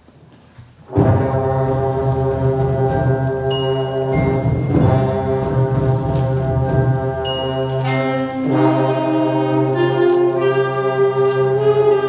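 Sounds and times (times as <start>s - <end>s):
concert band playing chord: 0.9s - 11.6s
low brass: 0.9s - 12.0s.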